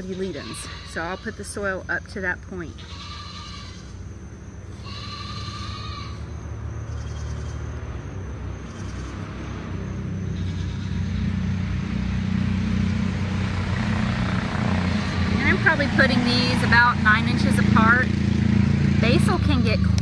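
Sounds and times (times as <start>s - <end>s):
low engine drone: 3.5s - 20.0s.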